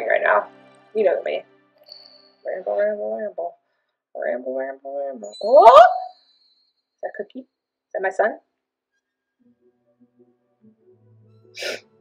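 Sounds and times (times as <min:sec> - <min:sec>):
faint music with sustained tones: 0:00.0 - 0:05.9
sharp breath through the nose: 0:11.6 - 0:11.9.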